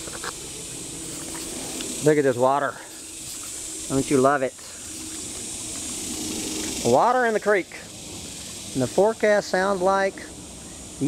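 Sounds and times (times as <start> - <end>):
creek water rushing: 0.0 - 11.0.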